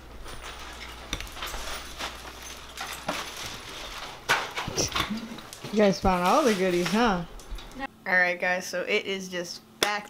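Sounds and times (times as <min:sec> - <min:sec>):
bags and boxes rustling: 0:00.0 - 0:07.3.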